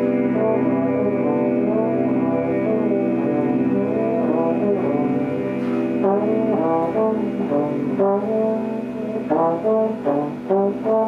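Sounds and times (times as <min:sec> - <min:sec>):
slide trombone melody: 0:00.0 - 0:11.0
sustained band chords: 0:00.0 - 0:11.0.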